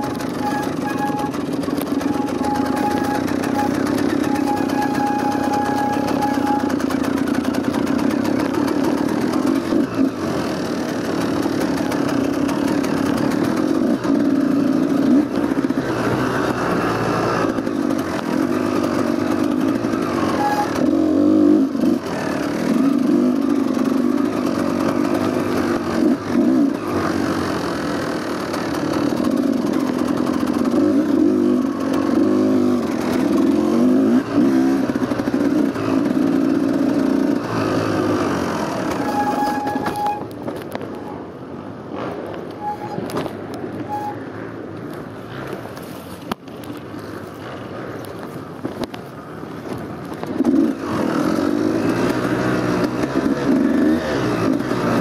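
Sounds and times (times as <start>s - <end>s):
dirt bike engine revving: 0.0s - 40.4s, 50.4s - 55.0s.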